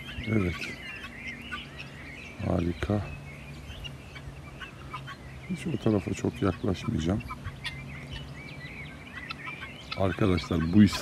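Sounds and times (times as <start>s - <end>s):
low steady hum: 0.0s - 11.0s
fowl calling faintly: 3.5s - 11.0s.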